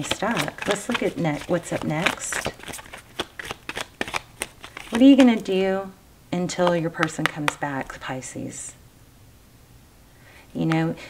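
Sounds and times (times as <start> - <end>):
cards being shuffled: 0.0 - 5.5, 7.0 - 7.6.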